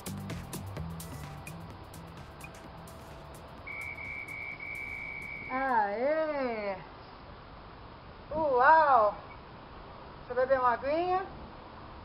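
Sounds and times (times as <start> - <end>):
high electronic beep: 3.6 - 5.7.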